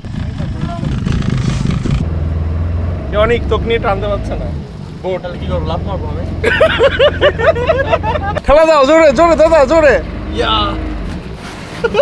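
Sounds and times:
low engine hum: 0:00.0 - 0:12.0
men laughing and calling out: 0:05.8 - 0:09.8, 0:11.7 - 0:12.0.

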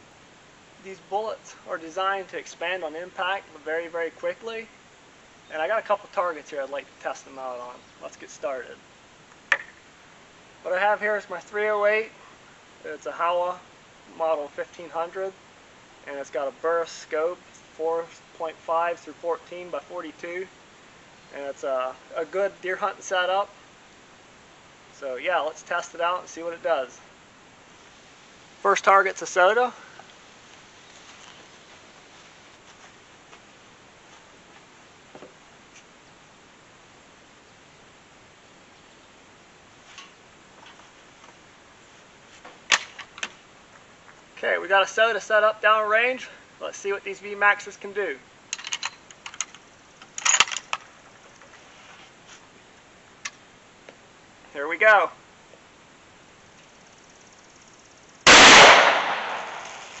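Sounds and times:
outdoor background hiss: 0:00.0 - 1:00.0
faint light ticks and rustles: 0:17.4 - 0:18.2, 0:29.9 - 0:36.0, 0:48.5 - 0:54.6
rifle shot: 0:58.3 - 1:00.0.

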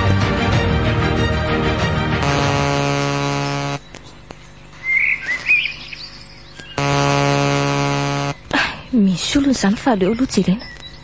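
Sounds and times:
bright held musical chord: 0:02.2 - 0:03.8.

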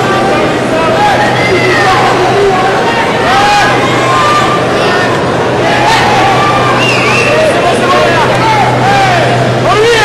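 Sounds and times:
crowd din: 0:00.0 - 0:10.0
steady low hum: 0:00.0 - 0:10.0
voices calling out: 0:00.0 - 0:10.0.

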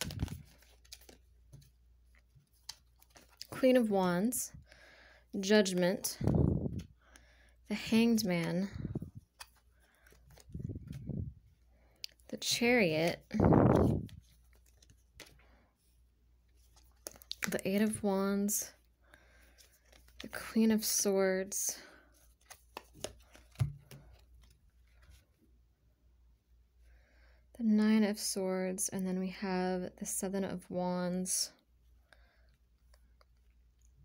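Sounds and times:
tarot cards snapping and tapping: 0:22.4 - 0:24.5.

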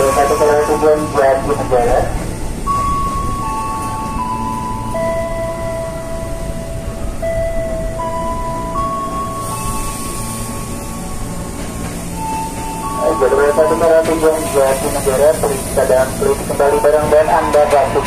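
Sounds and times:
electric train rumbling: 0:00.0 - 0:18.0
slow melody of long notes: 0:02.4 - 0:16.9.

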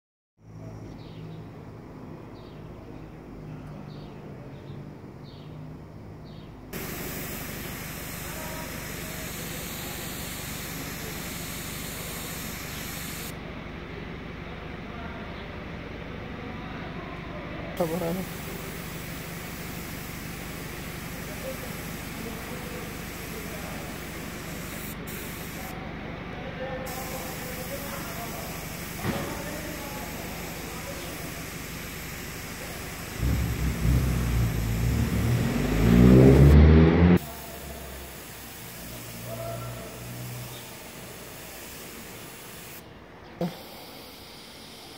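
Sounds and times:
spray gun hissing: 0:06.8 - 0:13.3, 0:17.8 - 0:25.8, 0:26.9 - 0:36.6, 0:37.2 - 0:44.9.

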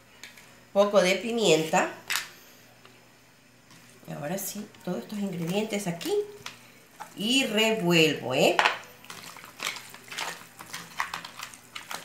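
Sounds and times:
chicken stirred clinking in dish: 0:09.1 - 0:12.0.

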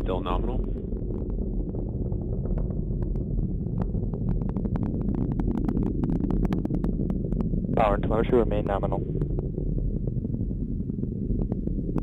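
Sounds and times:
rocket engines rumbling and crackling: 0:00.0 - 0:12.0.

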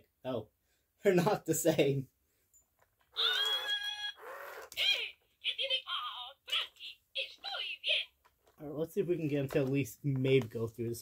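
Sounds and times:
toy speaking in cartoon voice: 0:03.1 - 0:08.3.

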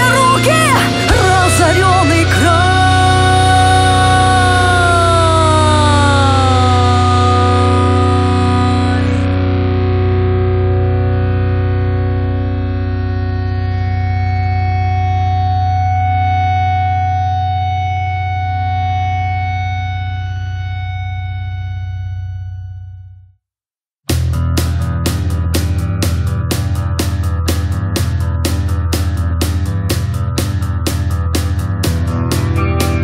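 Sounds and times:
distorted electric guitar chord: 0:00.0 - 0:22.9, 0:24.1 - 0:33.0
steady bass: 0:00.0 - 0:23.3, 0:24.1 - 0:33.0.

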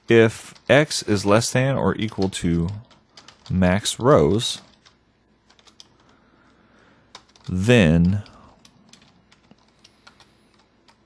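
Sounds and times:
faint keyboard keystrokes: 0:02.0 - 0:03.6, 0:04.6 - 0:11.0.

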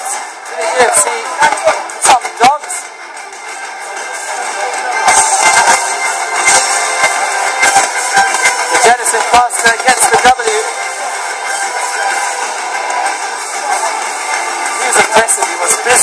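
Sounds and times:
music from a speaker: 0:00.0 - 0:16.0.

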